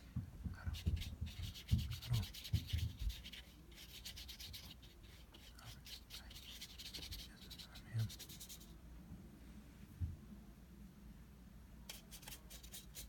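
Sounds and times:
brush rubbing across paper: 0:00.7 - 0:08.8, 0:11.9 - 0:13.0.

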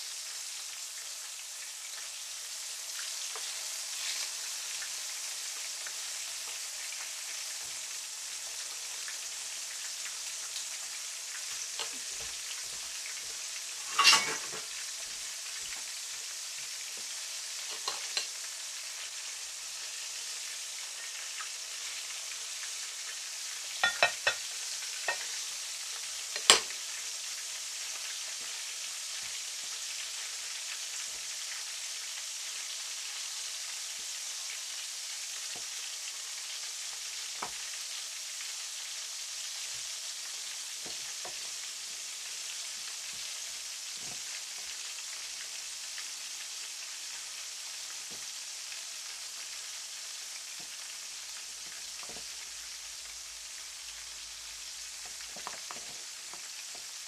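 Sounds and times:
meat sizzling in hot oil: 0:00.0 - 0:57.0.

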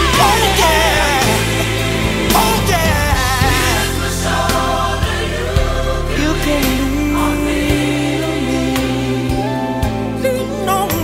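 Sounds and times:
backing band: 0:00.0 - 0:11.0
gospel singing: 0:00.0 - 0:11.0.

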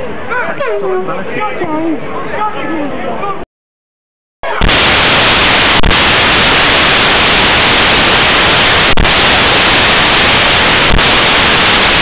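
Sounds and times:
loud static hiss: 0:04.4 - 0:12.0.

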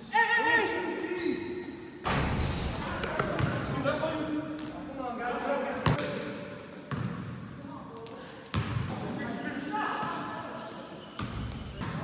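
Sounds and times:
players' voices and shouts: 0:00.0 - 0:06.6, 0:07.5 - 0:11.7
basketball bouncing on gym court: 0:06.9 - 0:07.4, 0:08.0 - 0:08.9.

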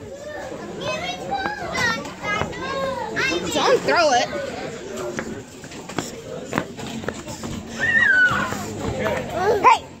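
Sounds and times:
children calling out and crying: 0:07.7 - 0:10.0.

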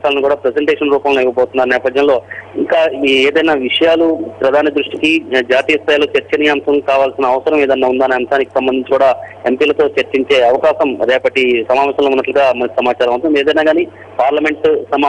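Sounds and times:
low hum: 0:00.0 - 0:15.0
person talking over telephone: 0:00.0 - 0:15.0.

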